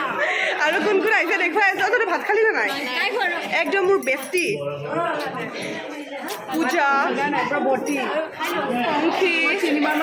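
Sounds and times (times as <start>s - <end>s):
people talking and chattering: 0.0s - 10.0s.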